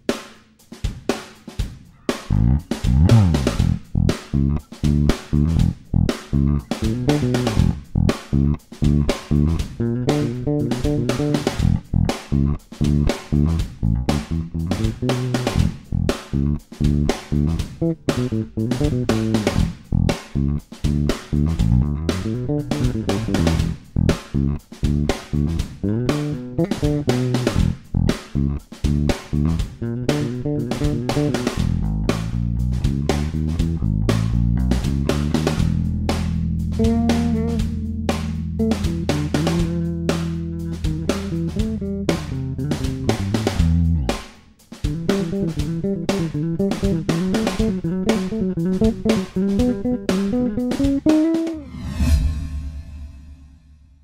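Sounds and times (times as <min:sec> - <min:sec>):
electric bass fingerstyle: 0:02.2 - 0:51.7.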